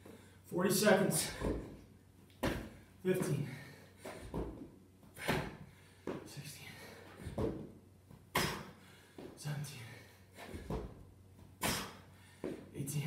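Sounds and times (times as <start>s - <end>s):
thuds of hands and feet on mat: 1.2s - 1.8s, 2.4s - 3.4s, 4.0s - 6.3s, 7.2s - 9.4s, 10.4s - 12.7s
hard breathing: 11.6s - 12.7s.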